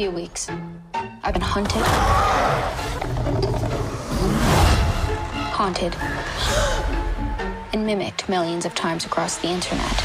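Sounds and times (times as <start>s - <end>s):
dramatic film score: 0.0s - 10.0s.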